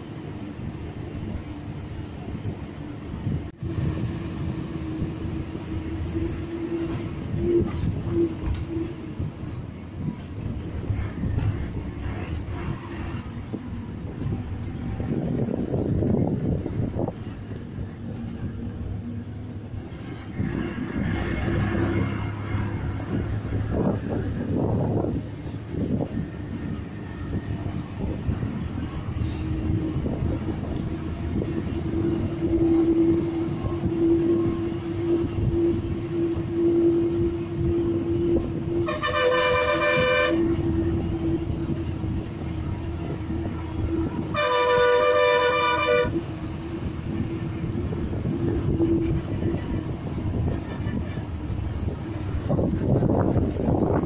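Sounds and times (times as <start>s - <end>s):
bus engine whining: 0.0s - 54.0s
long horn blasts: 31.8s - 41.4s, 43.8s - 46.4s.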